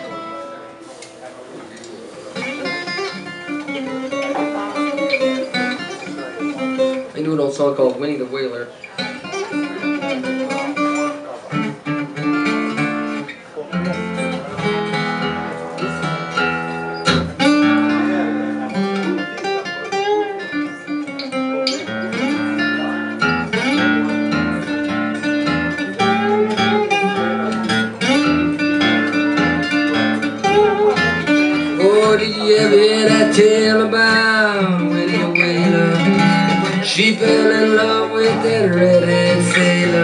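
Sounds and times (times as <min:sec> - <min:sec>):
acoustic blues guitar picking: 0:00.0 - 0:40.0.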